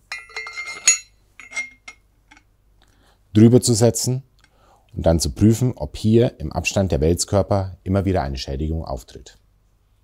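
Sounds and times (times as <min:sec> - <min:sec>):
light metallic clinks: 0:00.1 - 0:02.5.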